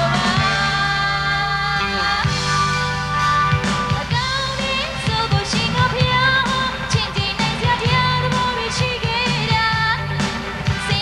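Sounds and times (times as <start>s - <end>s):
woman singing into microphone: 0.0s - 2.5s, 3.2s - 11.0s
band playing pop song: 0.0s - 11.0s.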